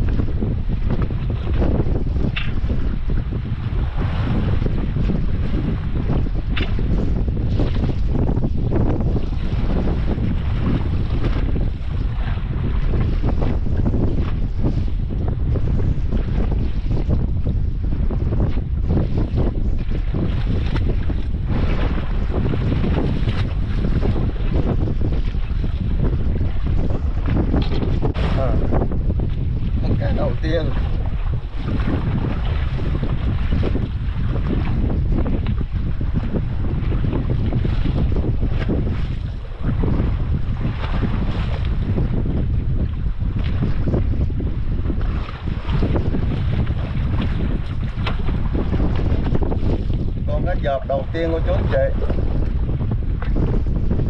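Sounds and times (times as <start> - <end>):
wind rumbling on microphone: 0.0 - 54.0
sea waves washing: 27.7 - 28.9, 29.8 - 33.3.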